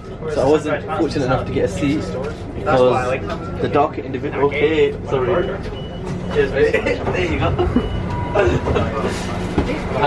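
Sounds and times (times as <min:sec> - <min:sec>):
train rumbling: 0:01.1 - 0:10.0
men talking and laughing: 0:04.8 - 0:10.0.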